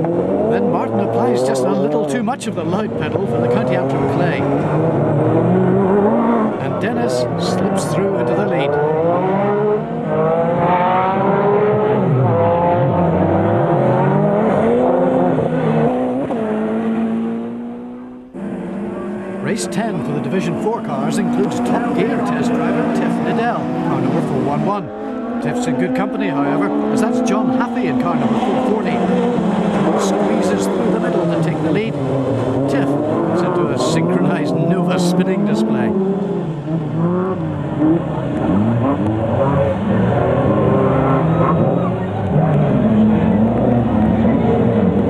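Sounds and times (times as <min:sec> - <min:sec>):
race car engines revving: 0:00.0 - 0:45.0.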